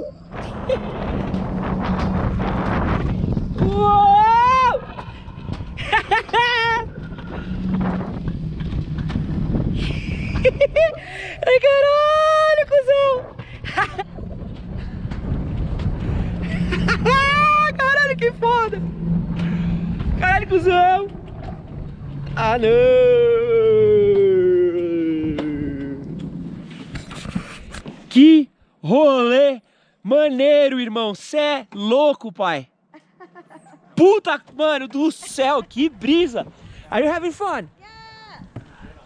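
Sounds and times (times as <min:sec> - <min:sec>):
sled wheels rumbling on metal rail: 0:00.0 - 0:28.0
man whooping: 0:03.6 - 0:05.0, 0:22.7 - 0:26.0.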